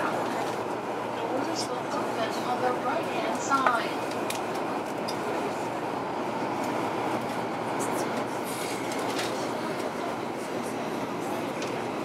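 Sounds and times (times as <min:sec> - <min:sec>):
train running noise inside car: 0:00.0 - 0:12.0.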